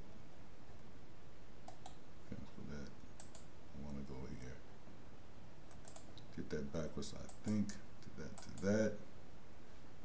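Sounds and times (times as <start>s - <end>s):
computer mouse clicks: 1.6s - 2.0s, 2.8s - 3.5s, 5.6s - 6.3s, 7.2s - 8.8s.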